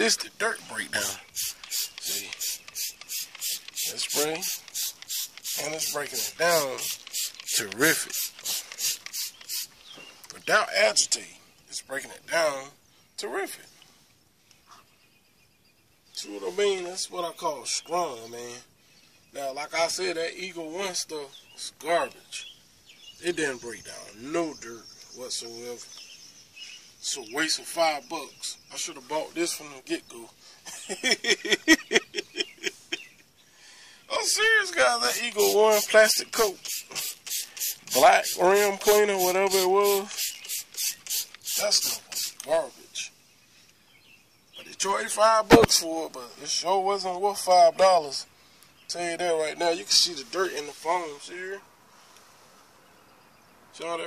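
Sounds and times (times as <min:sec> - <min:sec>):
trigger spray bottle spurts: 0:01.2 - 0:10.0, 0:35.1 - 0:42.5
man laughing: 0:30.6 - 0:33.3.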